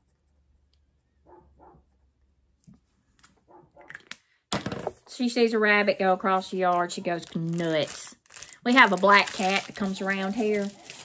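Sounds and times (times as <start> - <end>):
muffled dog barking: 1.2 - 1.9, 3.5 - 3.9
packaging rustling: 6.5 - 11.0.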